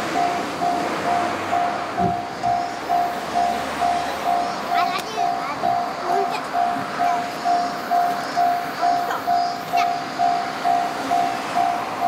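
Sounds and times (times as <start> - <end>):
level crossing alarm bell: 0.0 - 12.0.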